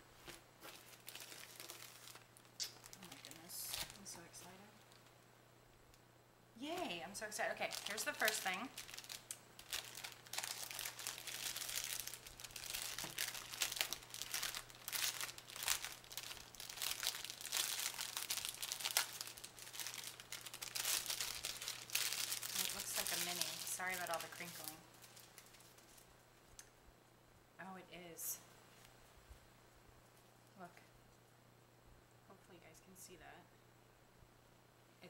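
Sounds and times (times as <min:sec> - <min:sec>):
plastic wrapping crinkling: 0:00.2 - 0:05.1, 0:06.6 - 0:26.2.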